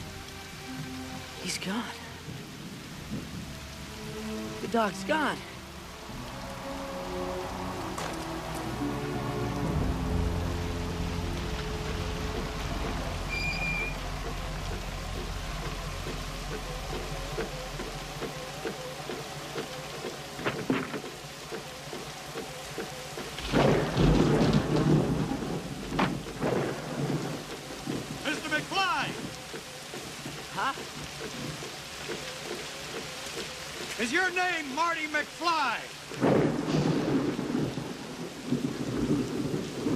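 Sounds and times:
heavy rain: 0.0 - 39.9
slow film score: 0.0 - 39.9
rumbling thunder: 23.3 - 29.4, 36.1 - 39.9.

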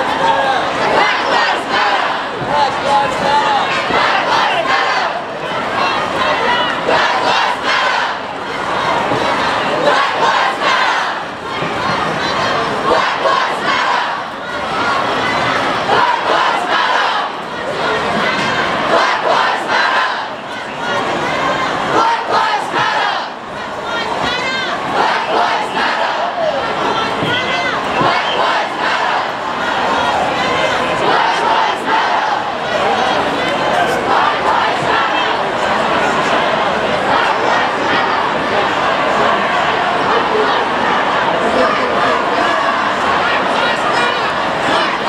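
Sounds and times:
crowd shouting together: 0.0 - 45.0.

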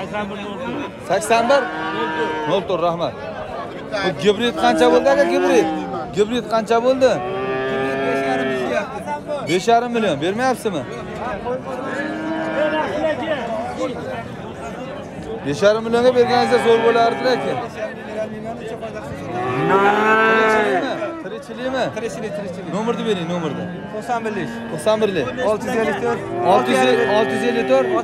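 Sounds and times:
cow mooing: 1.2 - 2.7, 4.5 - 6.0, 7.1 - 8.8, 11.9 - 13.0, 16.2 - 17.7, 19.2 - 21.3, 22.9 - 28.0.

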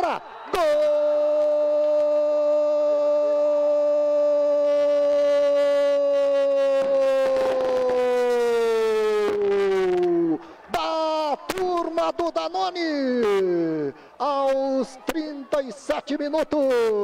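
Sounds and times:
man shouting a long goal cry: 0.0 - 17.0.

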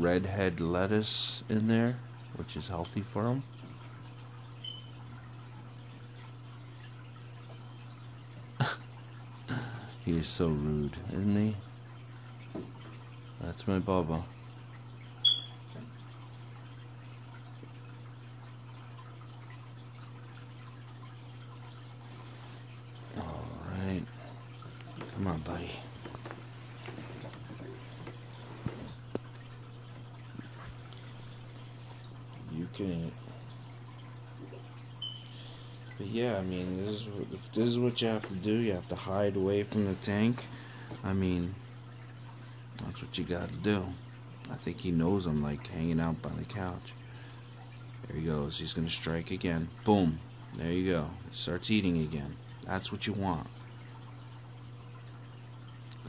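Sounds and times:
filter humming: 0.0 - 56.0
trickling water: 0.0 - 56.0.

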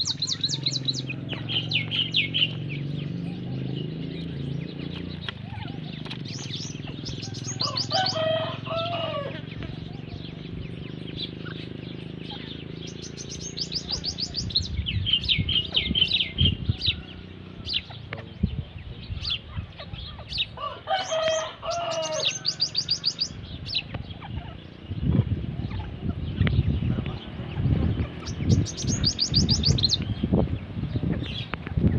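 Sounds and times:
francolins chirping: 0.0 - 31.9
low wavering bird calls: 0.0 - 31.9.

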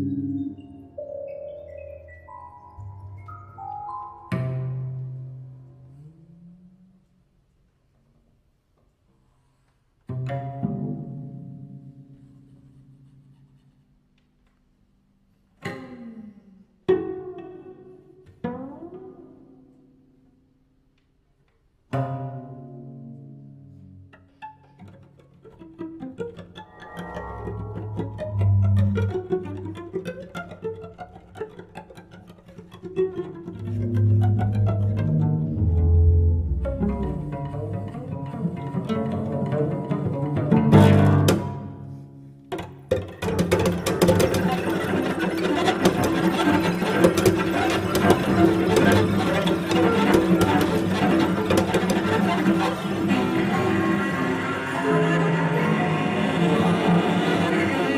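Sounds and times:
plucked cello notes: 0.0 - 6.9, 10.1 - 12.2, 16.9 - 20.2, 21.9 - 57.9
deep low cello tones: 0.0 - 7.5, 21.9 - 42.4, 43.3 - 57.9
electronic sounds: 26.6 - 29.7.

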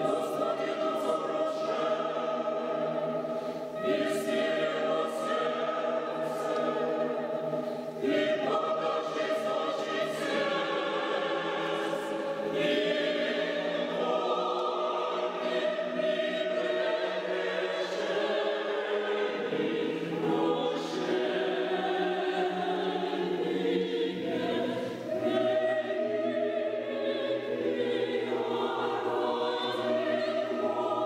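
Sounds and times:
mixed choir singing unaccompanied: 0.0 - 31.0.

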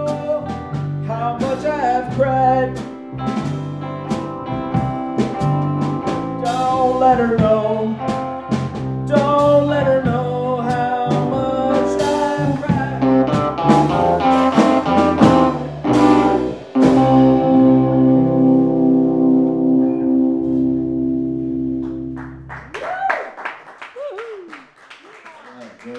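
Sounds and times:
rock band with held chord: 0.0 - 22.5.

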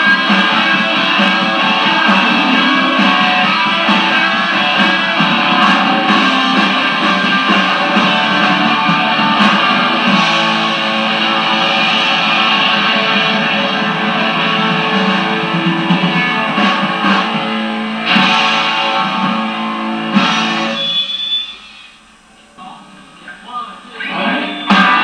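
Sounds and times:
live band with electric guitar: 0.0 - 23.2, 24.0 - 25.0.

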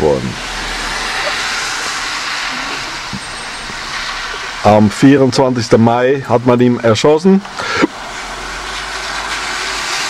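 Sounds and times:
steady rushing hiss: 0.0 - 10.0.

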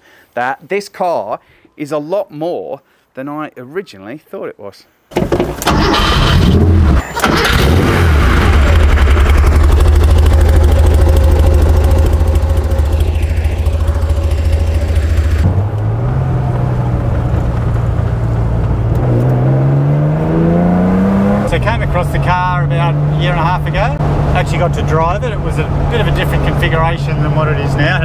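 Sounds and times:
car accelerating: 5.6 - 28.0
car engine idling: 7.2 - 19.9, 20.8 - 28.0
car engine heard from inside cabin: 9.2 - 28.0.

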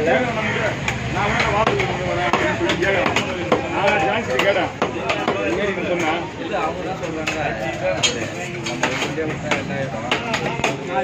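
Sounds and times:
voices talking: 0.0 - 11.0
knife chopping on wooden block: 0.9 - 5.5.

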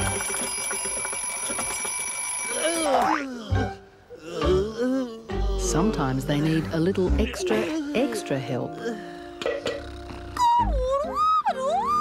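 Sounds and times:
alarm clock ringing: 0.0 - 2.9.

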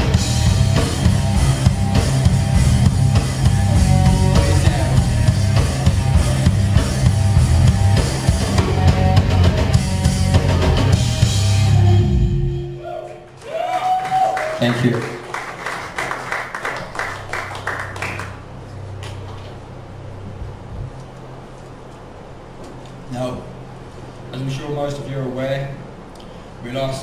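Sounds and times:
rock band playing: 0.0 - 12.8.

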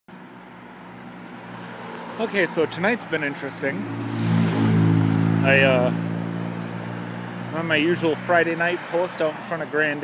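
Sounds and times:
motor vehicle humming: 0.1 - 9.8
roadside noise: 0.1 - 10.0.

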